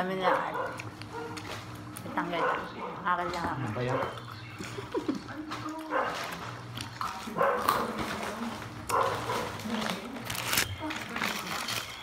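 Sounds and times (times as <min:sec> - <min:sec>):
dog barking: 0:00.1 - 0:01.5, 0:02.2 - 0:03.2, 0:03.8 - 0:04.2, 0:05.9 - 0:06.4, 0:07.3 - 0:08.0, 0:08.9 - 0:09.6.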